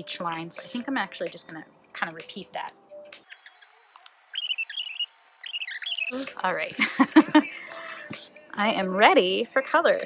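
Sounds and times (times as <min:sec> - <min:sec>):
small birds chirping: 0:03.2 - 0:07.1.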